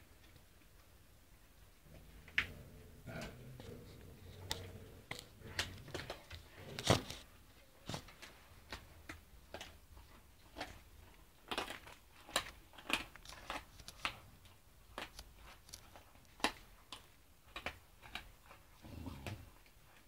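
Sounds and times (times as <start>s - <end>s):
dog gnawing bones: 8.0s - 20.0s.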